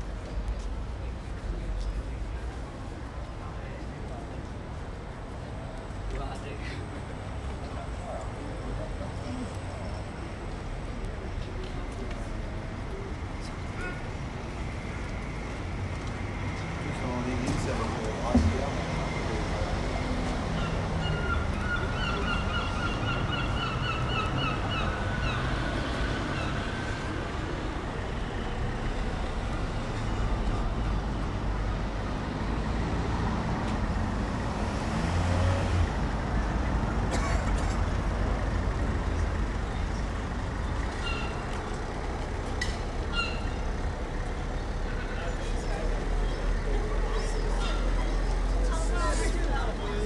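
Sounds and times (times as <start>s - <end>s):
passersby talking: 0.0s - 29.6s, 37.0s - 50.0s
car traffic rumble: 0.0s - 50.0s.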